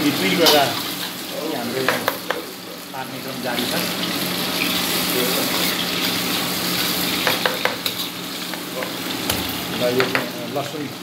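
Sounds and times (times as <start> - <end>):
meat sizzling in a wok: 0.0 - 11.0.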